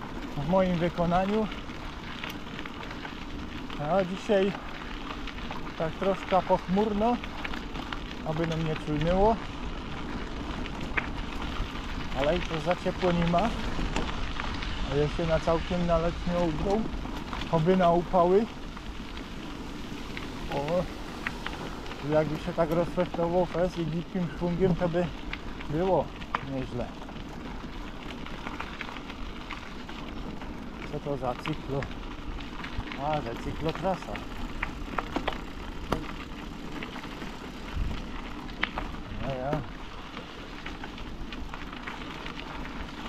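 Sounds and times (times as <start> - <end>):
bicycle tyres rolling on gravel: 0.0 - 43.0
low rumble: 7.7 - 40.4.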